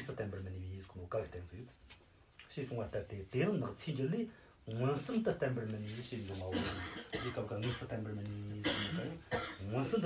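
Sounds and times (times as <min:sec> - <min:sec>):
man coughing: 0:06.5 - 0:10.0
man speaking slowly: 0:07.3 - 0:10.0.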